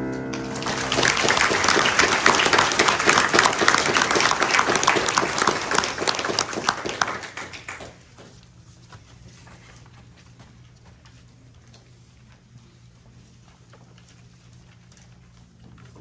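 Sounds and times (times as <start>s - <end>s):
piano chord ringing: 0.0s - 3.1s
audience applause: 0.0s - 8.4s.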